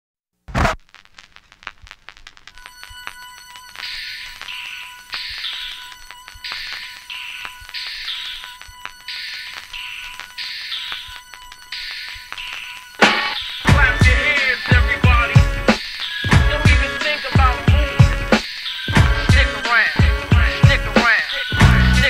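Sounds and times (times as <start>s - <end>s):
electronic telephone ringing: 2.6s - 22.0s
faint steady high tone: 2.6s - 22.0s.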